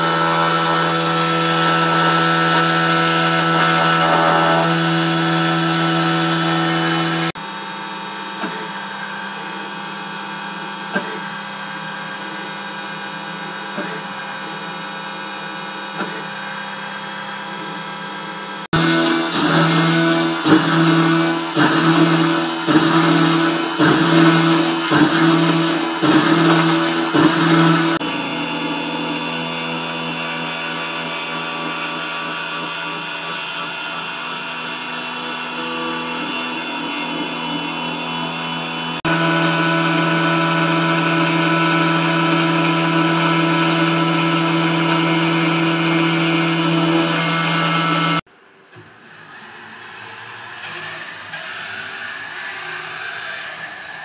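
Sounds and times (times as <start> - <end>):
milling machine cutting metal: 0.0 - 54.0.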